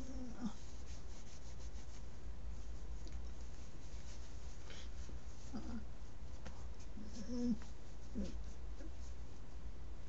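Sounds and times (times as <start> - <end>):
sleeves brushing cotton top: 0.0 - 9.7
woman humming: 7.0 - 7.6.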